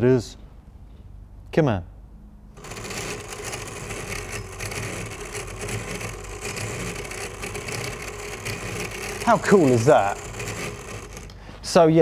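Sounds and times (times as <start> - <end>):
flap display whirring and clattering: 2.6 - 11.4.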